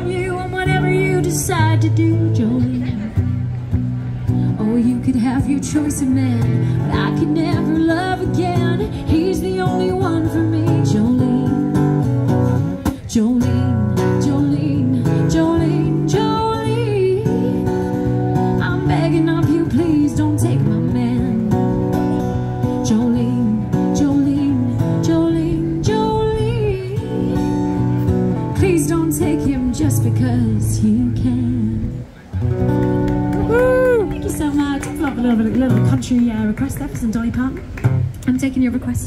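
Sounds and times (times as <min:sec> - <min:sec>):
woman singing country song: 0:00.0 - 0:03.6, 0:04.3 - 0:32.2, 0:33.5 - 0:39.0
strummed acoustic guitar: 0:00.0 - 0:33.4.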